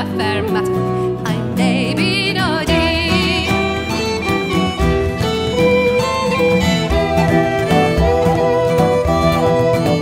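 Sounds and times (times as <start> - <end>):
fiddle melody: 0.0 - 10.0
strummed acoustic guitar: 0.0 - 10.0.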